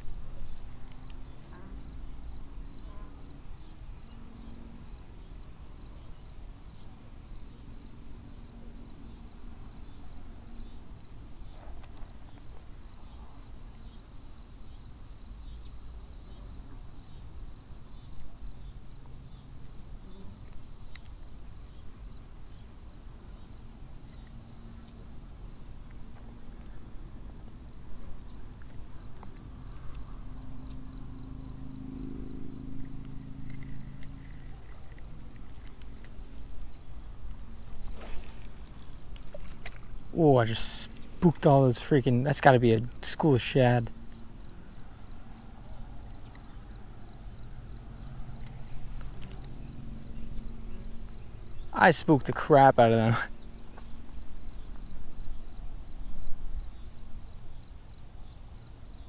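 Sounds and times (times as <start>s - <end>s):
insects chirping: 0.0s - 59.0s.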